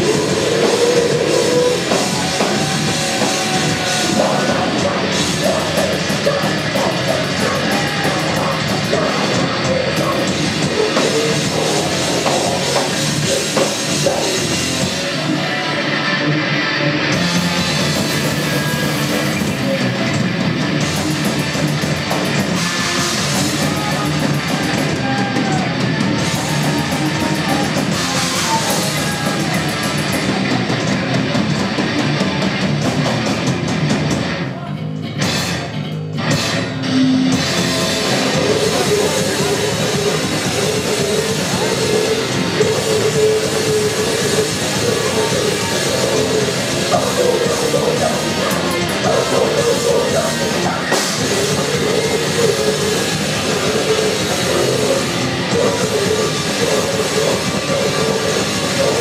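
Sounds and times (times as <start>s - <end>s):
heavy metal band playing: 0.0s - 59.0s.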